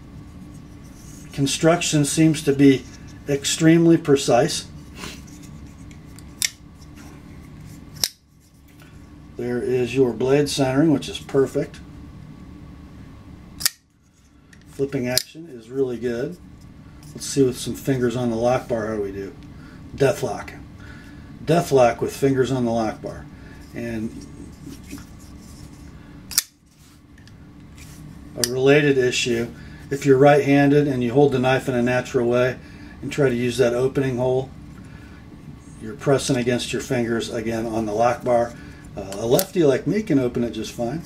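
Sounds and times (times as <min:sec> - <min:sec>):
folding knife blade clicking: 0:13.6 - 0:13.8.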